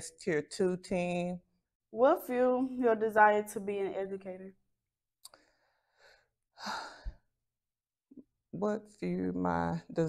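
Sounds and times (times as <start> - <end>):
woman sighing: 6.5 - 7.3.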